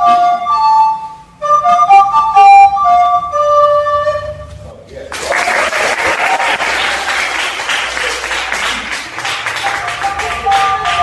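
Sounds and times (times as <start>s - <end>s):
recorder playing: 0.0s - 4.6s, 9.2s - 11.0s
audience applauding: 5.1s - 11.0s.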